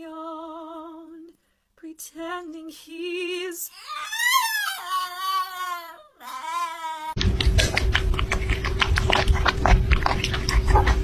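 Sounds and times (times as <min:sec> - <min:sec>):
small dog howling: 0:03.8 - 0:07.2.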